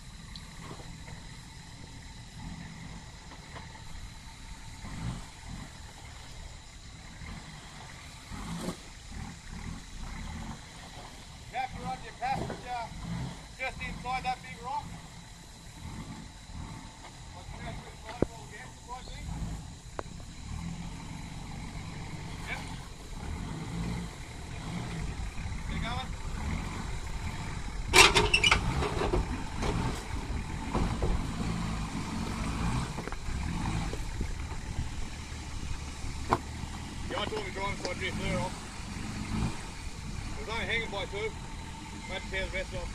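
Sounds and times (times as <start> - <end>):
vehicle engine crawling over rocks: 0.0 - 42.9.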